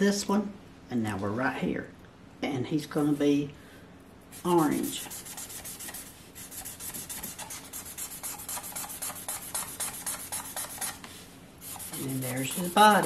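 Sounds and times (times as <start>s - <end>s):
marker scratching on paper: 4.3s - 13.0s.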